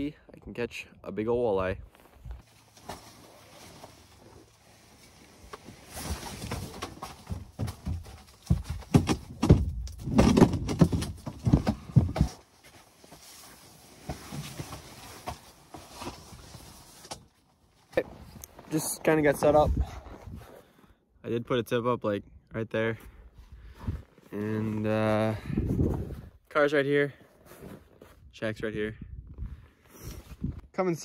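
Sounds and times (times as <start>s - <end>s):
gear knocking and thumping: 6.5s - 12.4s.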